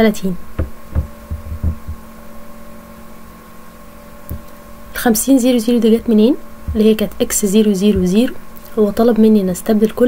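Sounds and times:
electrical hum: 0.0s - 10.0s
dull low thumps: 0.5s - 2.1s, 4.3s - 4.5s, 6.0s - 8.4s.

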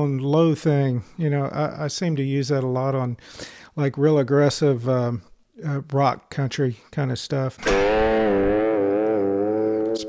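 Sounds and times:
electric guitar bent note vibrato: 7.6s - 10.0s.

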